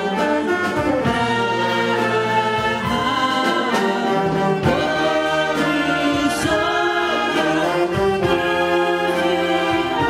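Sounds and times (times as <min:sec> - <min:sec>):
wind band playing sustained chords: 0:00.0 - 0:10.0.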